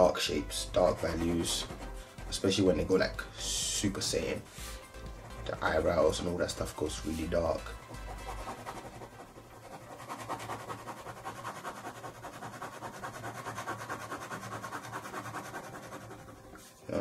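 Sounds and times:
pen scratching on paper: 0:00.6 - 0:03.0, 0:04.2 - 0:16.8.

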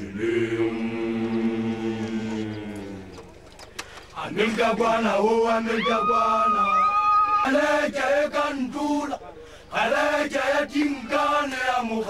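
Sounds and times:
men chanting low note: 0:00.0 - 0:03.5.

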